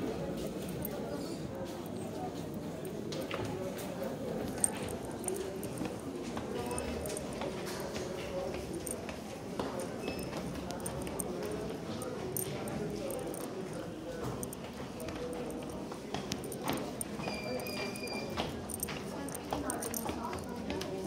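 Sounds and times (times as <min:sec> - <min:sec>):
people talking: 0:00.0 - 0:21.0.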